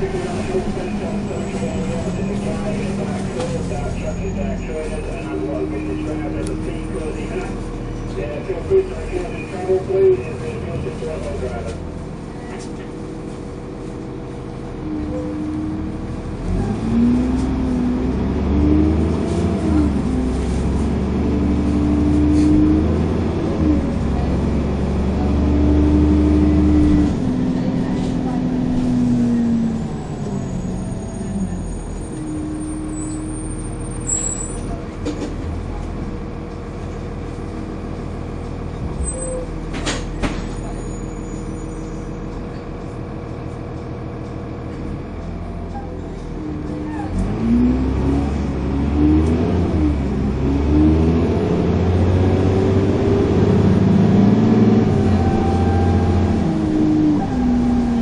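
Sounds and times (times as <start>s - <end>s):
bus diesel engine pulling hard: 0.0s - 58.0s.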